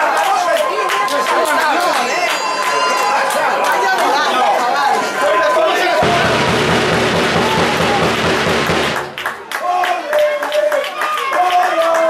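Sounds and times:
people shouting and talking: 0:00.0 - 0:12.0.

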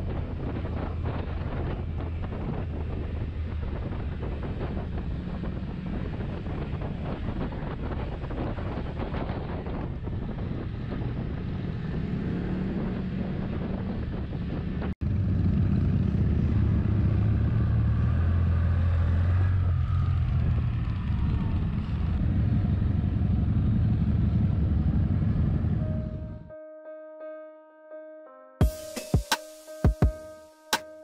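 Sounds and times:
wind rushing over microphone: 0:00.0 - 0:26.5
motorcycle engine running: 0:12.7 - 0:26.4.

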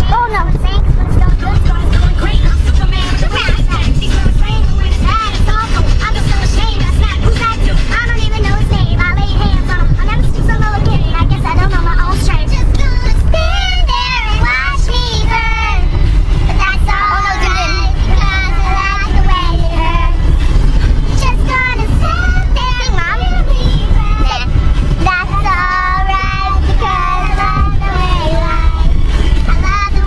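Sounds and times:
car rumble: 0:00.0 - 0:30.0.

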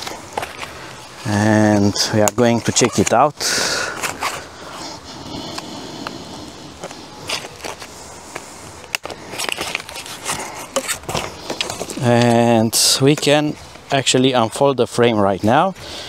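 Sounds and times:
foam padding scraping and rustling: 0:00.0 - 0:03.3, 0:06.8 - 0:14.0.

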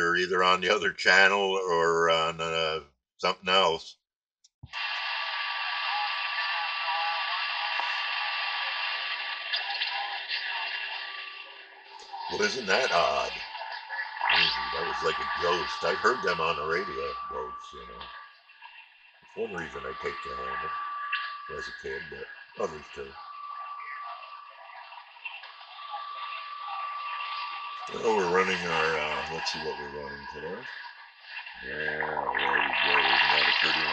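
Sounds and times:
radio static hiss: 0:00.0 - 0:03.8, 0:04.7 - 0:18.2, 0:19.4 - 0:30.8, 0:31.4 - 0:33.9
faint radio voice: 0:00.0 - 0:03.9, 0:12.0 - 0:13.4, 0:14.3 - 0:18.1, 0:19.4 - 0:20.8, 0:21.5 - 0:23.2, 0:27.9 - 0:30.8, 0:31.6 - 0:33.9
steady whistle tone: 0:04.8 - 0:33.9.

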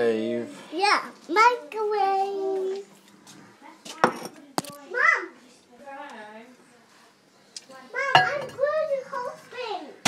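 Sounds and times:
kitchenware clinking: 0:08.0 - 0:08.8.

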